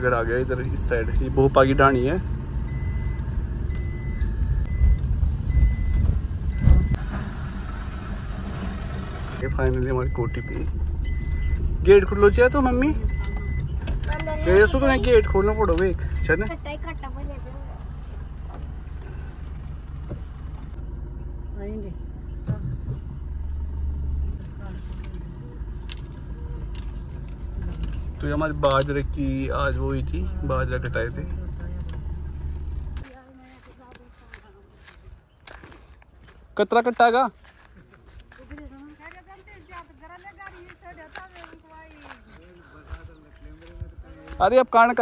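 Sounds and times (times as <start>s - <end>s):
car rumbling over rough lane: 0.0s - 33.7s
high electronic beep: 2.7s - 7.0s, 9.4s - 17.0s
heavy thump: 5.9s - 7.2s.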